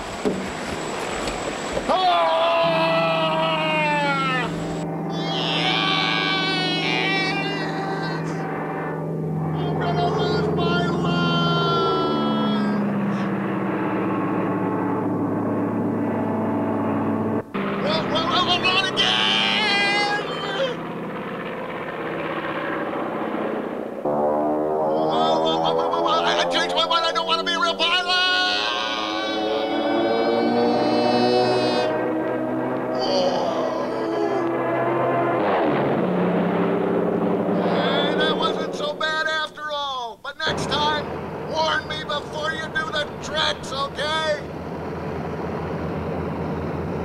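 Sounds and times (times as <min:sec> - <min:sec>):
man yelling and crying out: 0:01.9 - 0:08.4, 0:09.6 - 0:13.2, 0:17.8 - 0:20.8, 0:25.1 - 0:32.0, 0:32.9 - 0:34.5, 0:37.6 - 0:44.5
steady low drone: 0:02.5 - 0:27.6, 0:28.5 - 0:39.2, 0:40.5 - 0:47.0.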